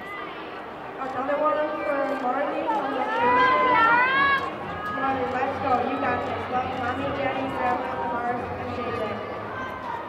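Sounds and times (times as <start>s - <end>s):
chatter in gym hall: 0.0s - 10.0s.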